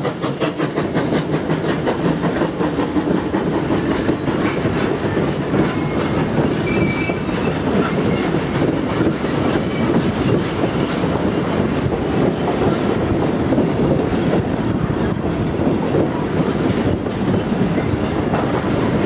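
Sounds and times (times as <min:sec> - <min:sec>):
clickety-clack over rail joints: 0:00.0 - 0:19.0
train wheels rumbling on rails: 0:00.0 - 0:19.0.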